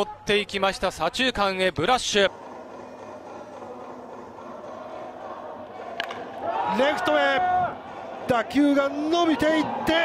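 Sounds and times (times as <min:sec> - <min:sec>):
ballpark crowd ambience: 0:00.0 - 0:10.0
faint music: 0:00.0 - 0:10.0.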